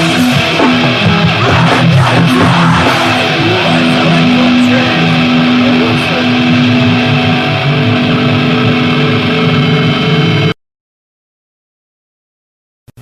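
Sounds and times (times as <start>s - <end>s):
distorted electric guitars droning: 0.0s - 10.6s.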